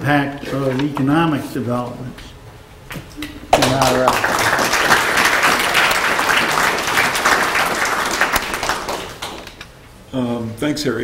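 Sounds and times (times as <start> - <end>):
audience applauding: 3.5 - 9.6.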